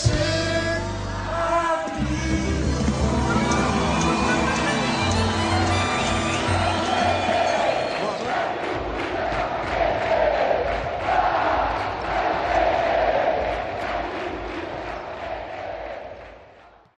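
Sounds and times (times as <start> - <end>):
crowd chanting: 1.8 - 16.8
steady low beat: 2.0 - 9.8.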